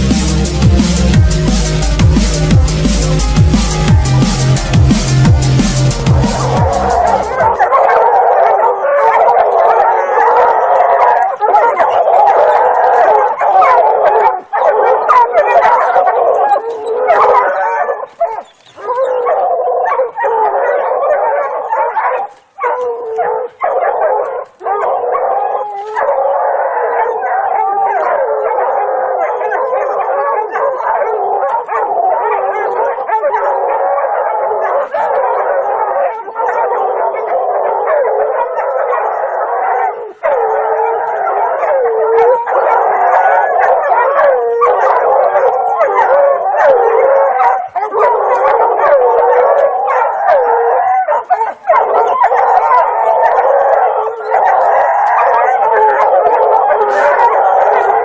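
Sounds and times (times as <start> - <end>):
dogs barking and howling: 0.0 - 58.0.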